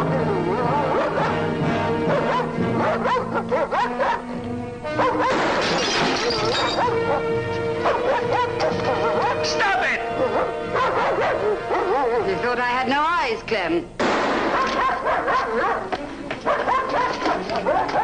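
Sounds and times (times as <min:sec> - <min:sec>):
dramatic orchestral music: 0:00.0 - 0:12.4
dog barking: 0:00.7 - 0:01.4, 0:02.1 - 0:04.3, 0:05.0 - 0:05.5, 0:06.3 - 0:09.6, 0:10.2 - 0:12.3, 0:14.5 - 0:18.0
loud crash: 0:05.3 - 0:06.6, 0:14.0 - 0:14.7.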